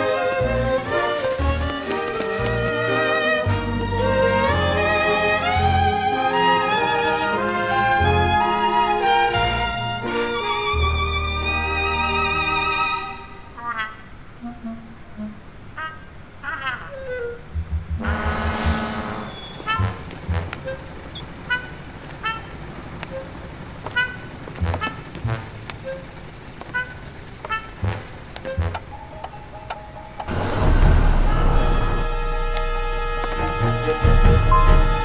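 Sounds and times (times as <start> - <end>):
music: 0.0 - 13.6, 27.8 - 35.0
short electronic beeps: 18.0 - 19.8
bus air brake hiss: 18.1 - 20.0.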